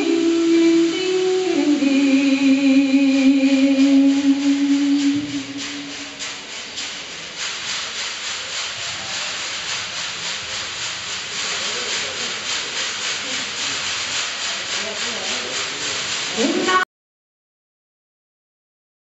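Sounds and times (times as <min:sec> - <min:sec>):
ocean drum beads rolling: 0:03.2 - 0:16.8.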